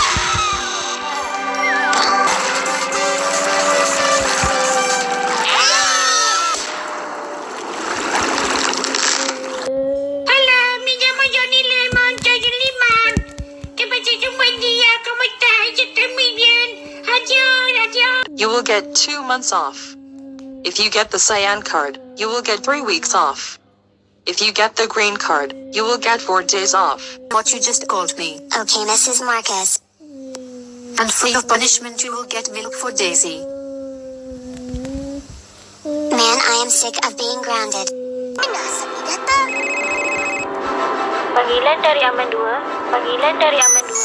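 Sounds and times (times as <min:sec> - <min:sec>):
background music: 0:00.0 - 0:05.5, 0:38.4 - 0:44.0
cartoon voice singing: 0:00.0 - 0:06.5
low hum of two tones: 0:09.6 - 0:12.1, 0:18.1 - 0:23.9
dull low thumps: 0:11.3 - 0:14.9.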